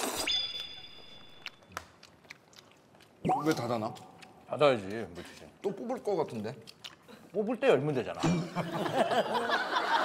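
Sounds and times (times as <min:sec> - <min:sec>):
people chewing: 0:01.0 - 0:08.3.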